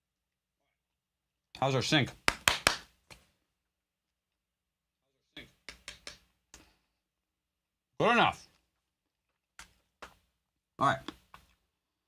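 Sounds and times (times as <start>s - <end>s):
hand claps: 2.1s - 3.3s, 5.4s - 6.7s.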